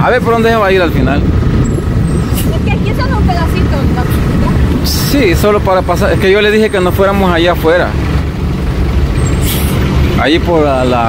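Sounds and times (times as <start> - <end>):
low rumble of engines: 0.0 - 11.0.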